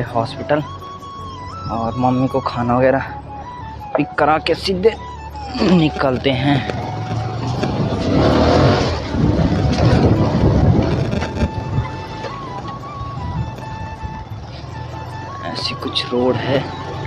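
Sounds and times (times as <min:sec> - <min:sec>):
motorcycle engine running: 0:05.4 - 0:17.0
wind rushing over microphone: 0:06.0 - 0:14.9.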